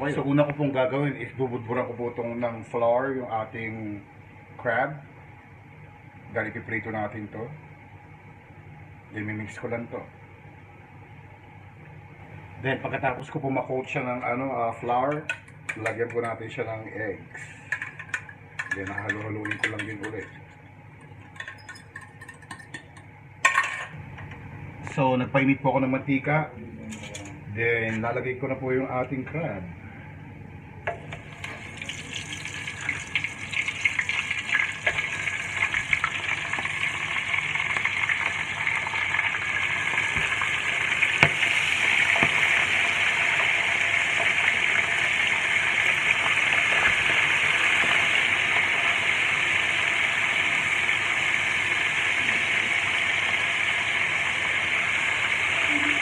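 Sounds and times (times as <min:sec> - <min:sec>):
crab sizzling in hot oil: 0:31.0 - 0:56.0.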